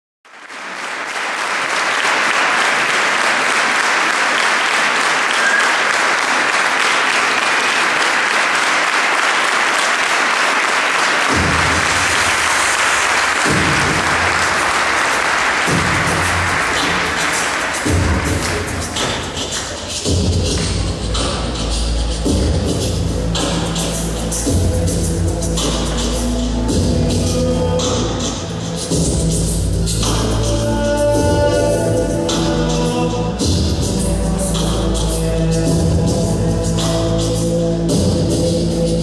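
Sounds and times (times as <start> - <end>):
audience applauding: 0.3 - 21.7
a cappella bass voice: 15.6 - 39.0.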